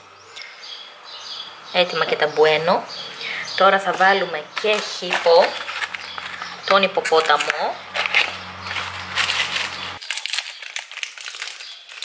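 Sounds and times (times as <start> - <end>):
packaging rustling and crinkling: 3.9 - 12.0.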